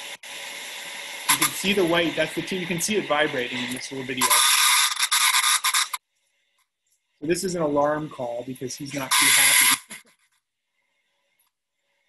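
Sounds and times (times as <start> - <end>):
cicada buzzing: 4.2 - 6.0.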